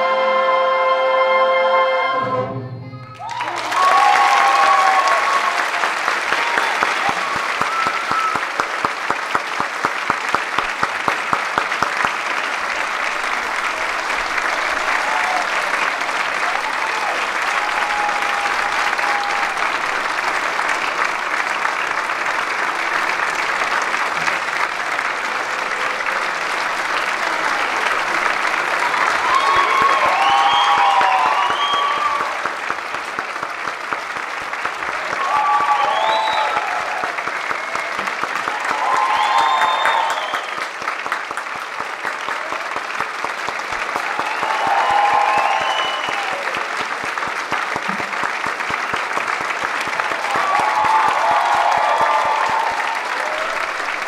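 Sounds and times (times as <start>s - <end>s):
shouted cheers and whoops: 3.0s - 8.6s, 13.7s - 20.0s, 28.8s - 32.5s, 34.9s - 40.6s, 43.9s - 46.7s, 50.0s - 54.0s
audience applauding: 3.1s - 54.0s
rhythmic clapping: 3.2s - 54.0s.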